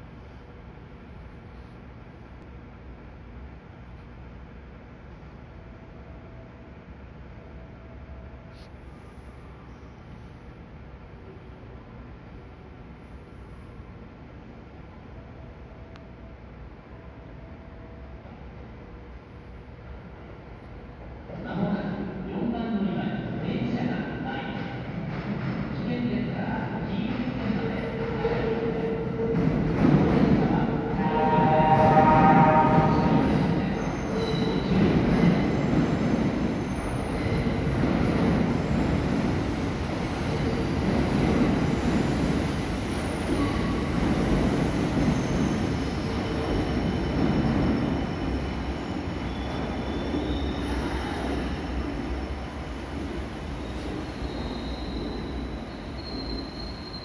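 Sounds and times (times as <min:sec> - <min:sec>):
train rumbling with echo: 0:00.0 - 0:57.0
train horn tone: 0:30.8 - 0:34.7
high wheel squeal: 0:31.0 - 0:34.8, 0:53.6 - 0:57.0.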